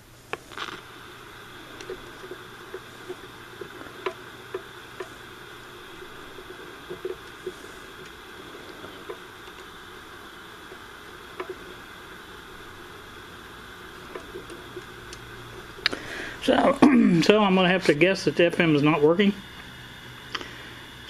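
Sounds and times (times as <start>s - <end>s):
radio static hiss: 0.0s - 21.0s
tuning knob clicks: 1.7s - 8.3s, 9.0s - 11.9s, 14.0s - 16.0s.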